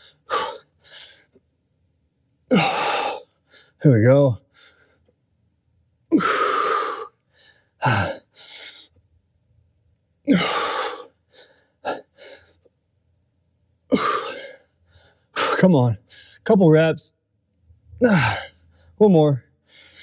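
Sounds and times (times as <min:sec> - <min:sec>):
man breathing hard: 0:00.0 - 0:01.4, 0:02.5 - 0:03.8, 0:04.5 - 0:05.1, 0:06.1 - 0:09.0, 0:10.3 - 0:12.7, 0:13.9 - 0:16.4, 0:19.6 - 0:20.0.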